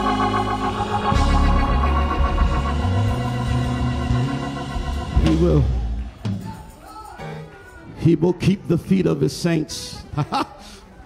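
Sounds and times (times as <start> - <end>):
church organ chords: 0.0 - 6.0.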